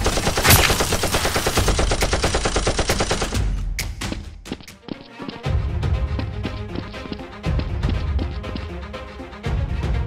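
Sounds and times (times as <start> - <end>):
machine-gun fire rattle: 0.0 - 3.4.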